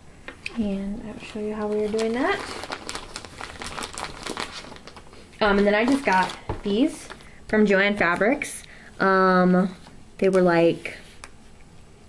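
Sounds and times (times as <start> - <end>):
plastic bag crinkling: 1.2 - 8.1.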